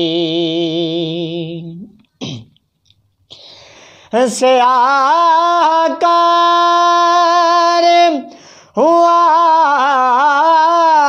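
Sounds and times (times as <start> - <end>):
man breathing in: 3.3 - 4.2, 8.3 - 8.8.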